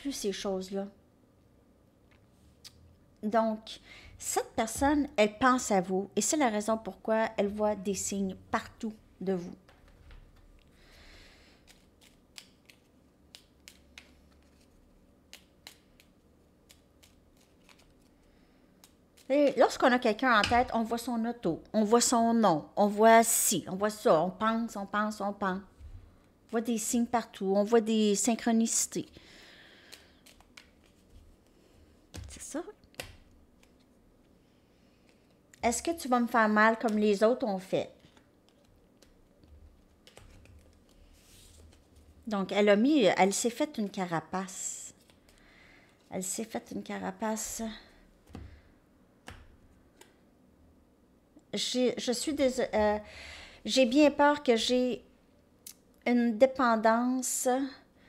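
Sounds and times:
cards clicking together: 11.6s - 14.7s, 15.3s - 18.1s, 29.9s - 31.0s
cards rustling: 11.6s - 19.6s, 29.8s - 34.0s, 38.0s - 42.2s, 44.9s - 46.1s.

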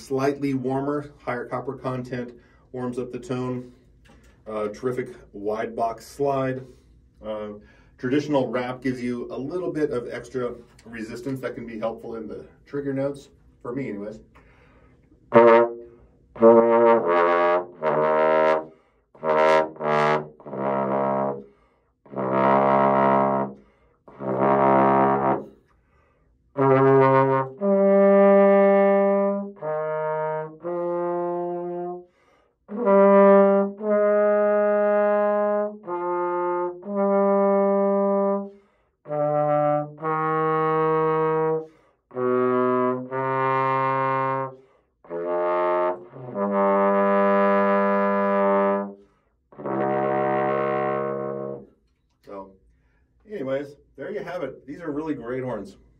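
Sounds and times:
breaths: 2.3s - 2.8s, 3.6s - 4.5s, 6.6s - 8.0s, 14.3s - 16.4s, 18.6s - 19.2s, 21.4s - 22.0s, 23.6s - 24.1s, 25.5s - 26.5s, 32.0s - 32.7s, 38.5s - 39.0s, 41.6s - 42.1s, 44.5s - 45.0s, 49.0s - 49.5s, 52.6s - 53.3s
trombone playing: 15.3s - 25.6s, 26.5s - 52.4s.

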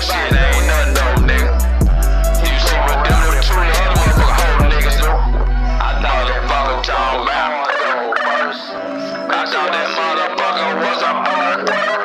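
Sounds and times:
hip hop track: 0.0s - 12.0s
warbling vocal line: 0.0s - 12.0s.

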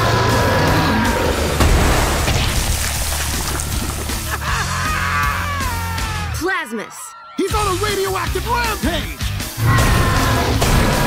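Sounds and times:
dramatic music: 0.0s - 6.4s, 7.6s - 11.0s
crash: 1.5s - 4.4s
long falling cry: 4.6s - 6.4s.

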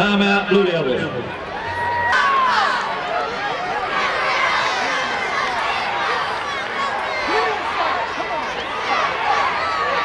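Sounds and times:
crowd talking and calling out: 0.0s - 10.0s.

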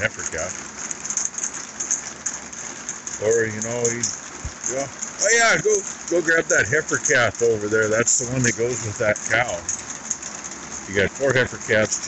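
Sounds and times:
rain pattering on roof: 0.0s - 12.0s.

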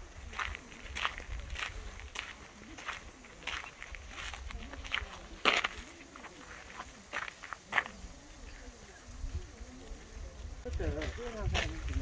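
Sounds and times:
footsteps crunching on sandy path: 0.0s - 12.0s.

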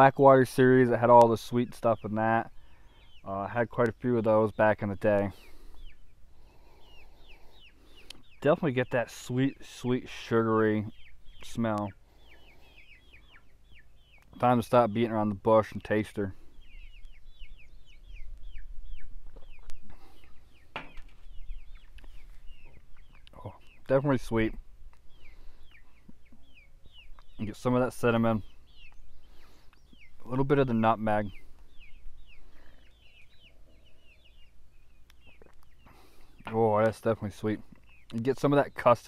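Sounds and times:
songbirds chirping: 0.0s - 39.0s.

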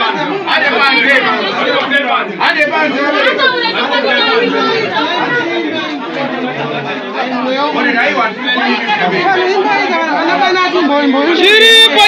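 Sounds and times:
crowd overlapping voices: 0.0s - 12.0s.

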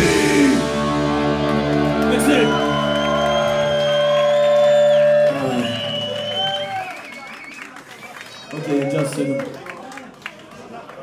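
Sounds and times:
punk band chord on distorted guitars: 0.0s - 3.8s
crowd whooping and shouting: 1.4s - 9.6s.

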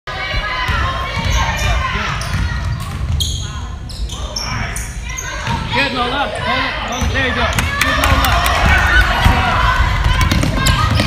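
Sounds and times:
players and spectators voices: 0.1s - 11.0s.

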